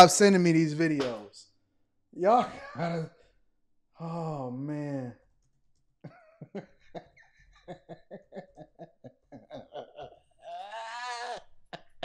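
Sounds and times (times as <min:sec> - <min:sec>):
man laughing hard: 0:06.1 - 0:11.4.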